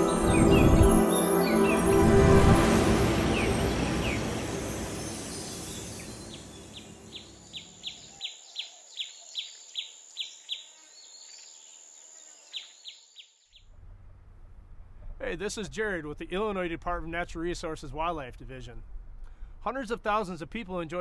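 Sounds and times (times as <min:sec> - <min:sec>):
low rumble: 0:00.0 - 0:07.4
steady high whine: 0:00.0 - 0:07.4
musical swell: 0:00.0 - 0:07.8
bird chirping: 0:00.0 - 0:13.6.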